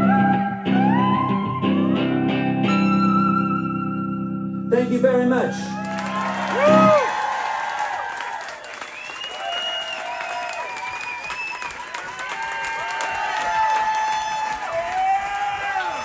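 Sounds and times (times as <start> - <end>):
whoops and shouts: 5.5 - 16.0
audience applauding: 5.7 - 16.0.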